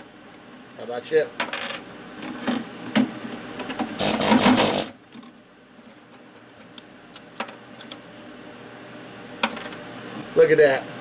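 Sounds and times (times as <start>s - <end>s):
pneumatic air hammer rattling: 4.0s - 5.0s.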